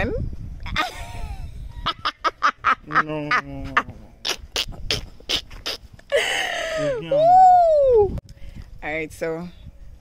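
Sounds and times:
mouth clicks and pops: 4.2s - 6.1s.

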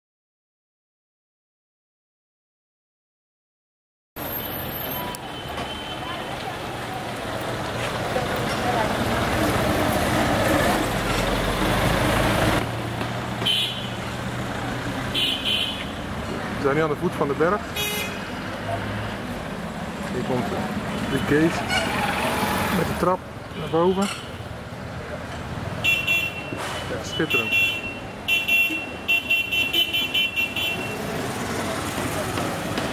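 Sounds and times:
street traffic rumble: 4.2s - 32.9s.

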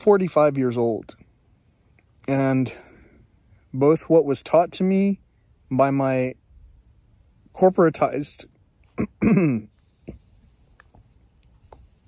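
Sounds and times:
faint high hiss: 0.6s - 12.0s
faint bird chattering: 9.5s - 12.0s.

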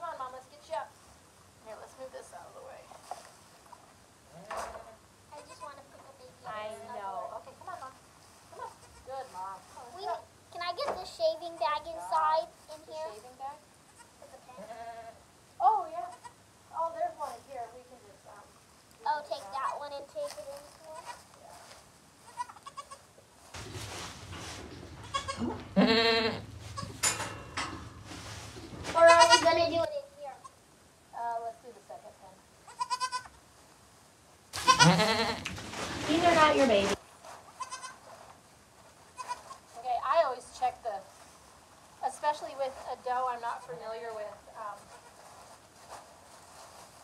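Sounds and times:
goats bleating: 25.0s - 27.0s, 34.6s - 35.5s.

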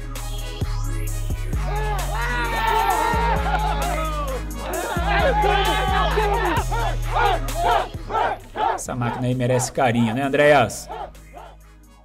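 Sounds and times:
background music with bass: 0.0s - 12.0s
crew cheering and shouting: 1.6s - 11.6s
man narrating: 8.8s - 11.0s.

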